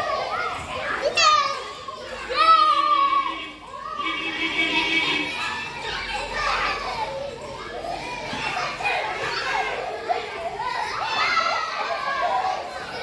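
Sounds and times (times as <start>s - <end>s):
children shouting at play: 0.0s - 13.0s.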